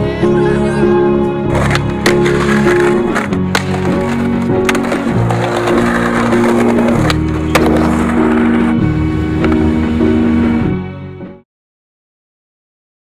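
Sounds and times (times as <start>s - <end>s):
background music with held notes: 0.0s - 11.4s
skateboard wheels rolling on concrete: 1.4s - 10.7s
skateboard clacks: 1.5s - 8.8s, 9.4s - 9.8s.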